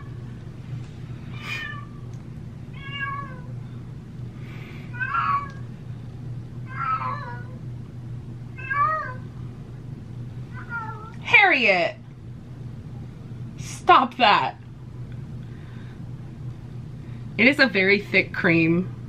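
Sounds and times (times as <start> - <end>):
steady low hum: 0.0 - 19.0
cat meowing: 1.3 - 2.0, 2.8 - 3.5, 4.9 - 5.6, 6.7 - 7.6, 8.5 - 9.2, 10.5 - 11.2.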